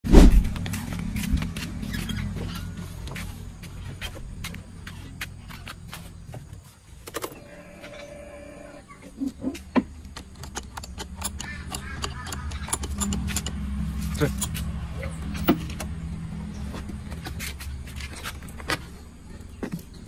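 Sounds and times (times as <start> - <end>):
low steady hum: 5.8 - 20.0
ignition key clicks and rattles: 10.0 - 16.0.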